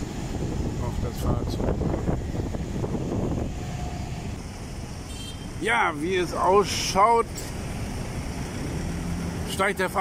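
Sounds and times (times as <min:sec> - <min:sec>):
wind on microphone: 0:00.0 - 0:04.4
vehicle engine rumbling: 0:00.0 - 0:10.0.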